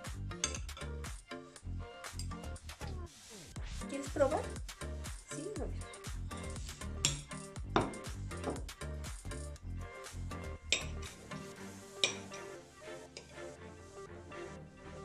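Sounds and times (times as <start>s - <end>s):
background music: 0.0s - 15.0s
spoon clinking on ceramic plate: 7.0s - 8.0s, 10.7s - 11.1s, 12.0s - 12.3s.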